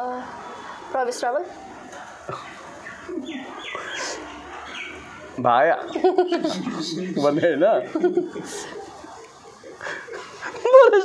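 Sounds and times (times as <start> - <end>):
birds chirping: 0.0 - 11.0
low bird calls: 2.2 - 7.3.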